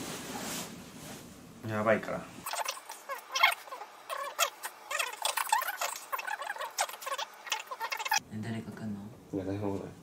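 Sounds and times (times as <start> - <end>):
fast-forwarded high-pitched voices: 2.4 - 8.2.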